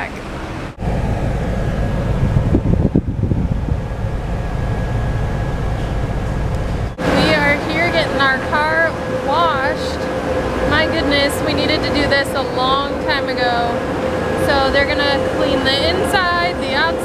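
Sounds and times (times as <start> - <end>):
wind buffeting microphone: 0.0 - 17.0
car cabin rumble: 0.7 - 7.4
woman speaking: 7.0 - 10.1, 10.7 - 13.8, 14.4 - 17.0.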